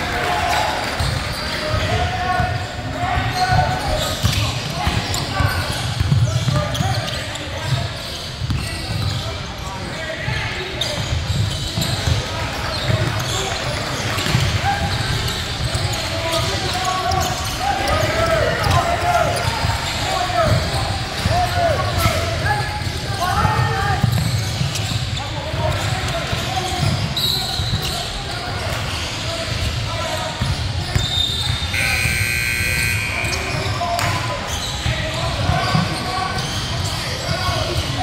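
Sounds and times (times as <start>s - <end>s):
indistinct shouts and chatter: 0.0s - 38.0s.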